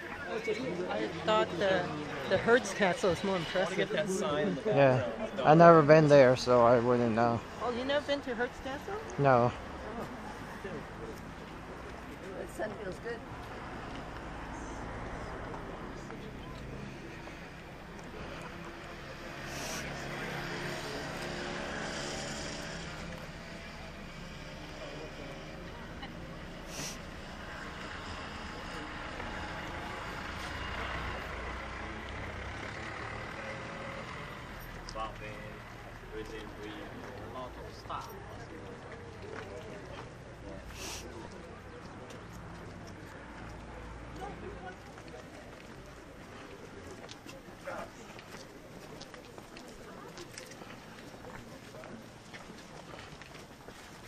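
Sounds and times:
faint voices: 0.0s - 54.0s
footsteps on stone paving: 9.9s - 19.8s, 34.6s - 54.0s
vehicle engine running: 13.5s - 37.3s.

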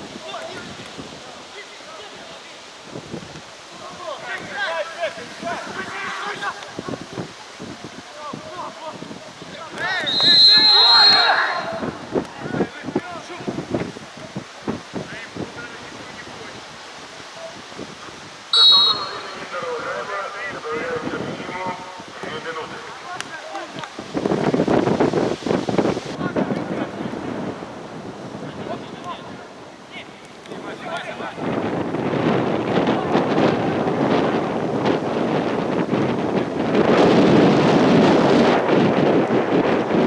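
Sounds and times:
wind on microphone: 0.0s - 40.0s
players shouting: 3.7s - 6.8s, 9.5s - 12.5s, 18.5s - 20.9s
faint shouts of players: 8.1s - 13.3s
referee's whistle blast: 10.0s - 11.8s, 18.5s - 19.5s.

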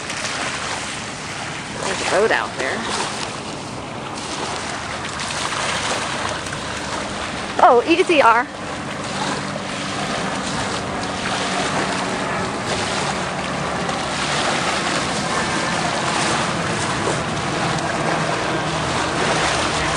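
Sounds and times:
small waves washing on shore: 0.0s - 19.9s.

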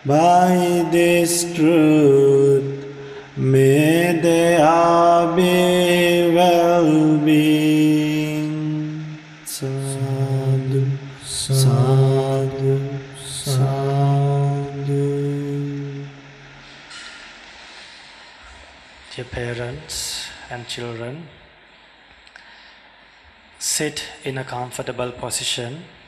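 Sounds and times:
man chanting: 0.0s - 16.6s, 19.1s - 21.5s.

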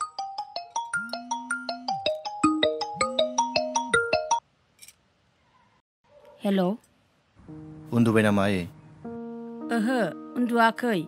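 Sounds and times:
marimba ringtone: 0.0s - 4.4s.

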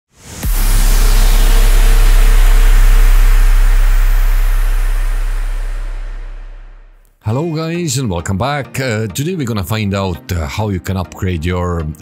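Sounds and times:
rising swell into booming hit: 0.1s - 7.0s.

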